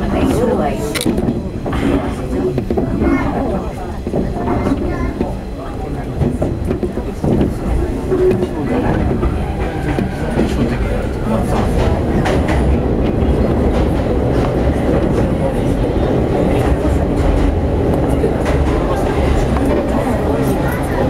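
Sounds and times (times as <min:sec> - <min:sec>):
train wheels rumbling: 0:00.0 - 0:21.0
wheels clacking over rail: 0:00.2 - 0:21.0.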